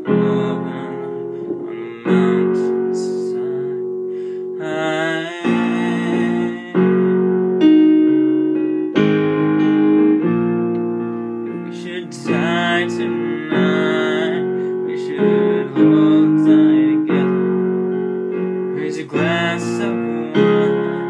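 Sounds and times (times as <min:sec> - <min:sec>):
piano playing slow chords: 0:00.0 - 0:21.0.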